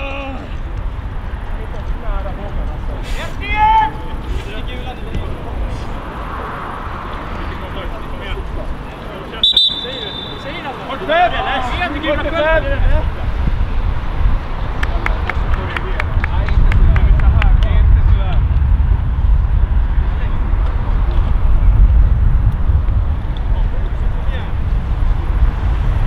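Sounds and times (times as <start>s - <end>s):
players shouting: 3.3s - 4.2s, 9.4s - 12.6s
referee's whistle blast: 9.4s - 10.7s
steady low rumble: 12.7s - 26.0s.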